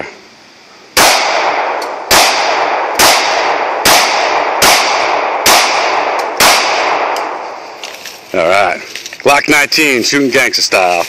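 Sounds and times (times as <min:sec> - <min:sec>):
pistol shots with echo: 0:01.0 - 0:07.4.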